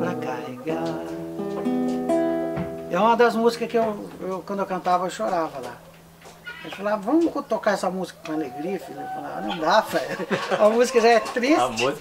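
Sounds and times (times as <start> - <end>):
acoustic guitar notes ringing: 0.0 - 6.7.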